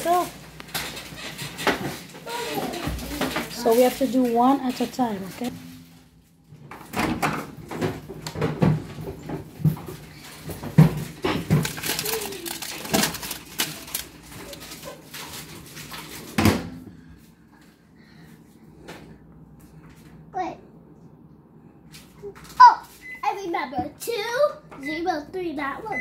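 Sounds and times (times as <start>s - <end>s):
paper bag set on turntable: 11.2s - 16.3s.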